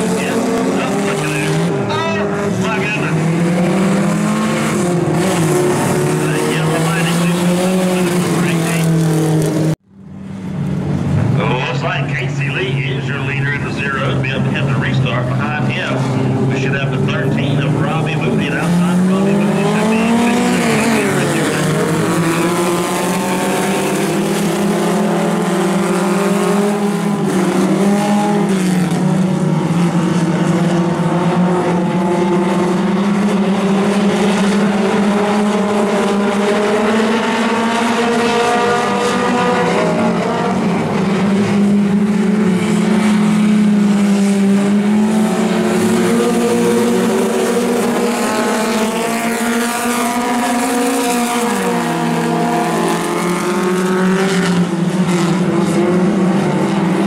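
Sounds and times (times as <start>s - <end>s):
race car engines revving: 0.0s - 57.0s.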